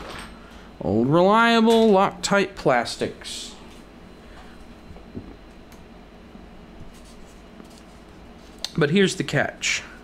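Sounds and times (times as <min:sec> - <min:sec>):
paper rustling and scraping: 0:06.8 - 0:08.2.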